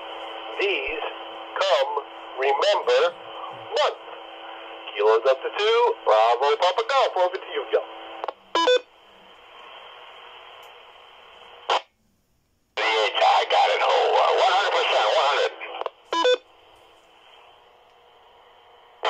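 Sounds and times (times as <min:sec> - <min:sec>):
radio carrier hiss: 0:00.0 - 0:08.4, 0:09.2 - 0:11.9, 0:12.8 - 0:16.0, 0:16.6 - 0:19.0
person speaking over radio: 0:00.5 - 0:04.0, 0:04.9 - 0:07.9, 0:12.8 - 0:15.8
radio beep: 0:08.2 - 0:08.9, 0:12.8 - 0:16.4.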